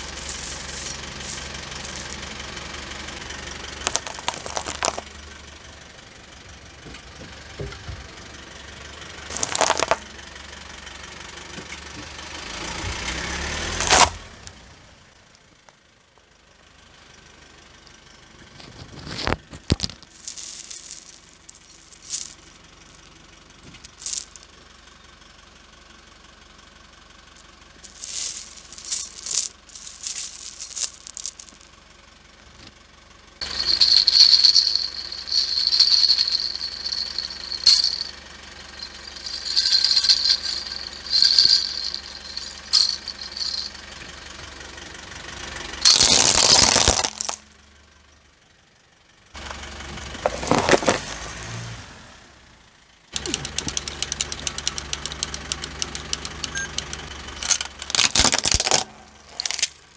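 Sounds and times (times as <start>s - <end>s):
baby rattles shaken: 0.0s - 2.2s, 3.9s - 5.0s, 9.3s - 10.0s, 20.0s - 22.4s, 23.9s - 24.4s, 27.9s - 31.6s, 33.4s - 38.1s, 38.7s - 43.7s, 45.9s - 47.4s, 57.5s - 59.8s
high jingle: 0.0s - 2.2s, 33.4s - 43.8s
plastic beads clattering: 0.0s - 2.3s, 3.8s - 5.0s, 9.3s - 10.0s, 13.8s - 14.2s, 19.1s - 22.5s, 23.8s - 24.4s, 27.9s - 31.7s, 33.4s - 38.1s, 38.7s - 43.7s, 45.8s - 47.4s, 50.3s - 51.2s, 57.4s - 59.9s.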